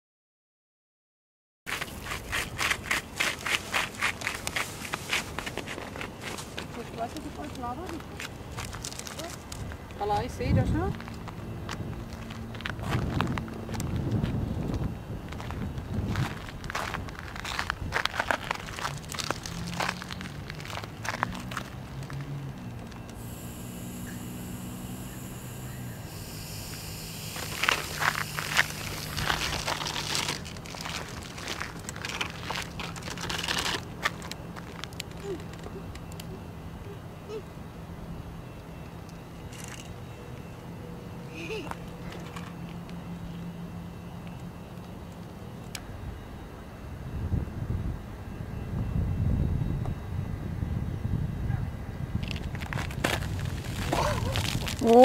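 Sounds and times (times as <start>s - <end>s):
footsteps on gritty asphalt: 1.7s - 35.2s, 52.2s - 55.0s
low hum: 9.8s - 55.0s
plastic bottle crinkling: 17.2s - 21.7s, 27.4s - 35.6s, 52.2s - 55.0s.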